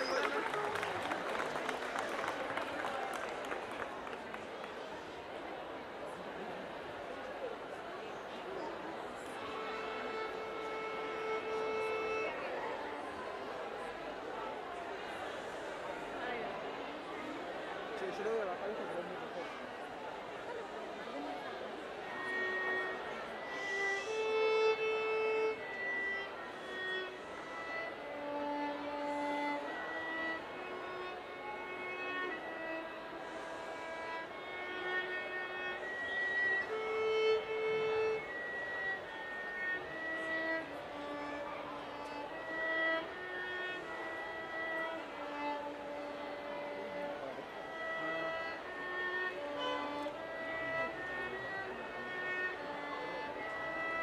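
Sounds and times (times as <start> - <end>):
solo violin melody: 0.0 - 54.0.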